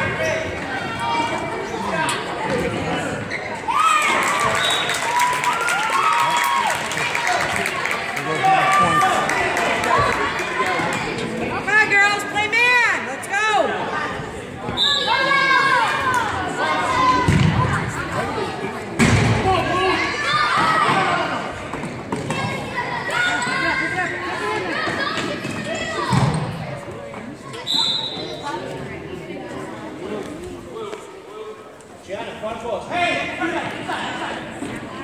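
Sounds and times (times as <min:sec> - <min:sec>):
voices of players and spectators: 0:00.0 - 0:35.0
shoe squeaks: 0:03.2 - 0:03.7, 0:27.5 - 0:28.6.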